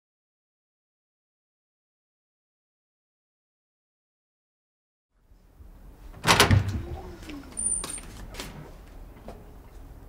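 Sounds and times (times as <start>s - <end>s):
door opening with clunk: 6.2s - 8.7s.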